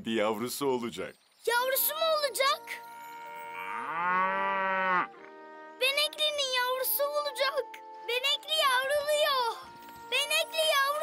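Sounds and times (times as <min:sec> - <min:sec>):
cow mooing: 0:03.4 - 0:05.7.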